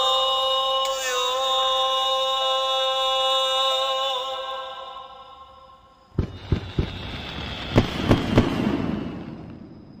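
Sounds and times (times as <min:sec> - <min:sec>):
crackling hiss: 0:00.0 - 0:10.0
fireworks bangs: 0:06.1 - 0:10.0.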